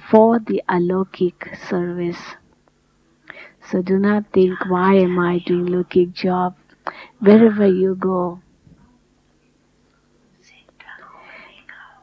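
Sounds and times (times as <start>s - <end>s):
low steady hum: 0.0s - 12.0s
faint whispered speech: 10.4s - 12.0s.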